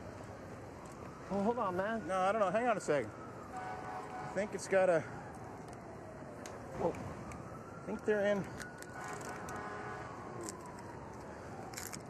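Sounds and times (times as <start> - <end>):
street ambience hum: 0.0 - 12.0.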